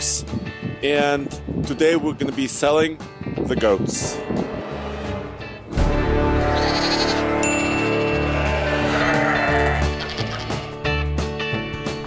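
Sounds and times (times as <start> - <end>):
music with bass line: 0.0 - 12.0
goat bleating: 6.4 - 7.4, 8.0 - 10.8.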